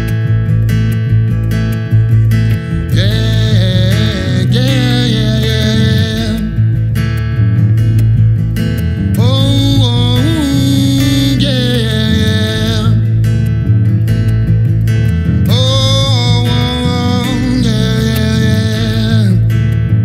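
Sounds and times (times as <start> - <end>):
electric bass line: 0.0 - 20.0
strummed acoustic guitar: 0.0 - 20.0
man singing: 2.8 - 6.6, 9.2 - 13.2, 15.5 - 19.6.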